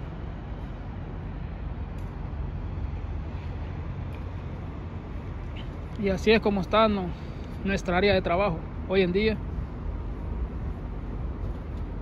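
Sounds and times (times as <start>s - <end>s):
city background rumble and hiss: 0.0s - 12.0s.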